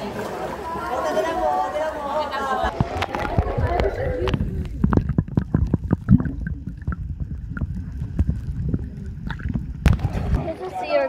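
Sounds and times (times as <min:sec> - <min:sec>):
muffled underwater water rumble: 0:02.6 - 0:10.6
underwater knocks and bubble pops: 0:02.7 - 0:10.4.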